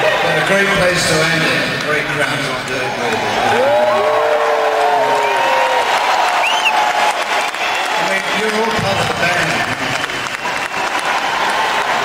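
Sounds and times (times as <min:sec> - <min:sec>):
crowd applauding and cheering: 0:02.7 - 0:12.0.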